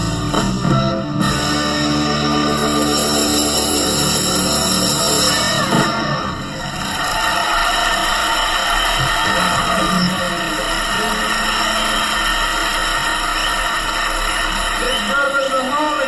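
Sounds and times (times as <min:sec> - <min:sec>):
band music playing: 0:00.0 - 0:07.0.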